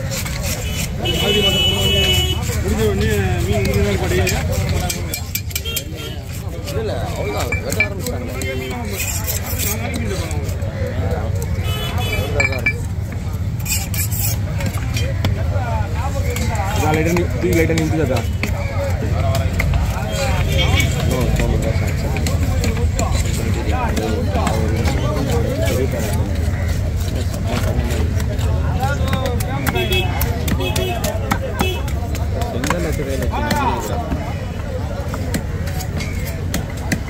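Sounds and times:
knife scraping fish: 0:00.0 - 0:10.7, 0:11.5 - 0:16.9, 0:24.2 - 0:33.9
faint voices: 0:00.0 - 0:37.0
traffic rumble: 0:00.0 - 0:37.0.

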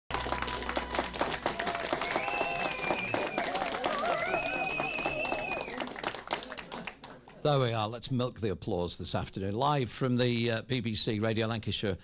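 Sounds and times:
audience clapping: 0:00.1 - 0:07.6
voices cheering: 0:00.2 - 0:06.2.

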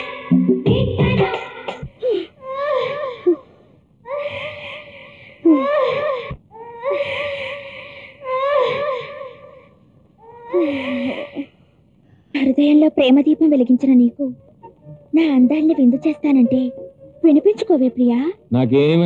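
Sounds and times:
woman crying: 0:02.0 - 0:03.5, 0:04.1 - 0:11.6, 0:12.4 - 0:13.0, 0:14.3 - 0:18.0.

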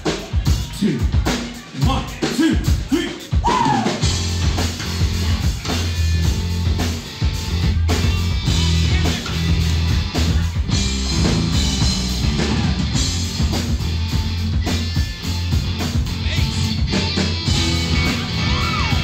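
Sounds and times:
drum kit beat: 0:00.0 - 0:19.0
pulsing bass guitar: 0:00.0 - 0:19.0
electric guitar: 0:03.5 - 0:19.0.

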